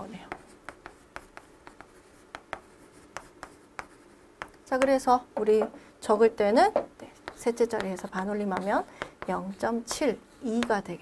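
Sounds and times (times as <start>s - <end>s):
chalk ticking on chalkboard: 0.1s - 5.0s, 7.2s - 10.9s.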